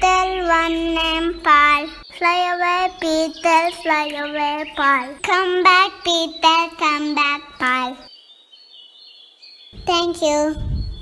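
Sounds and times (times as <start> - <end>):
child's voice: 0.0 - 8.1, 9.8 - 10.9
bird chirps and twittering: 0.0 - 11.0.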